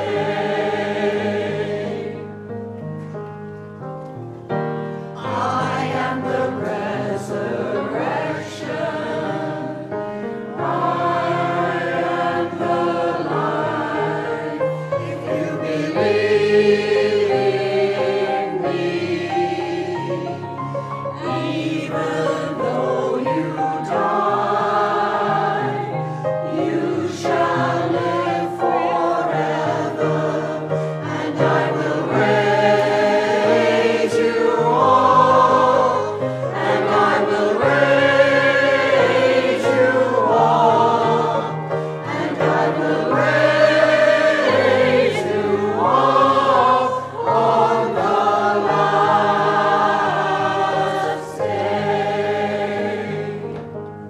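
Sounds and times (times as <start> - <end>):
choir singing a hymn: 0.0 - 2.8, 4.7 - 54.0.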